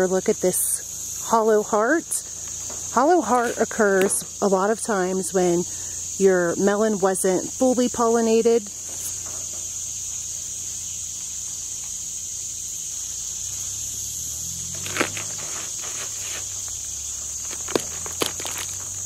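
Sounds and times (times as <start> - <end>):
insects chirring: 0.0 - 19.0
watermelon cracking apart: 14.7 - 16.5, 17.4 - 19.0.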